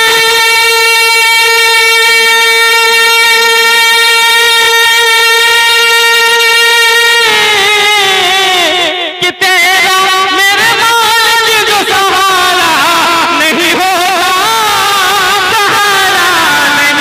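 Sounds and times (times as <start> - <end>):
man singing unaccompanied: 0.0 - 17.0.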